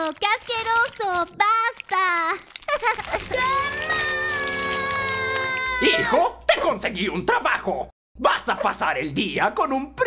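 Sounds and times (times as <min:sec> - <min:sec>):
cartoon boy yelling: 0:03.2 - 0:06.4.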